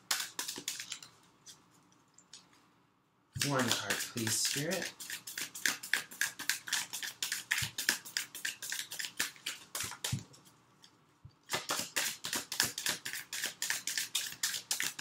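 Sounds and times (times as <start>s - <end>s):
cards being shuffled: 0.1s - 1.6s, 3.4s - 10.3s.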